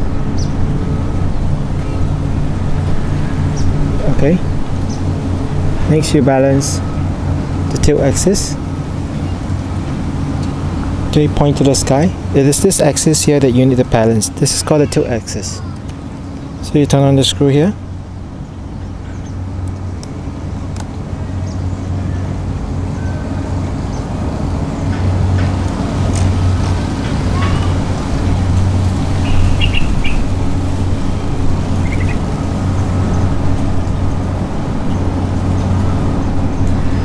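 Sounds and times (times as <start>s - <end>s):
low mechanical hum and rumble: 0.0s - 37.0s.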